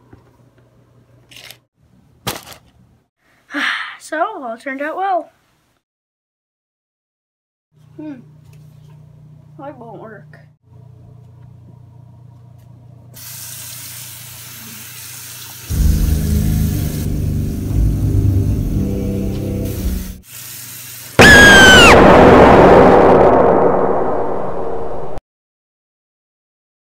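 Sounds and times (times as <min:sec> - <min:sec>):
faucet hissing: 0:13.2 - 0:17.7
loud low rumble: 0:15.7 - 0:20.1, 0:21.8 - 0:25.2
noisy blast: 0:15.7 - 0:20.2, 0:21.2 - 0:25.2.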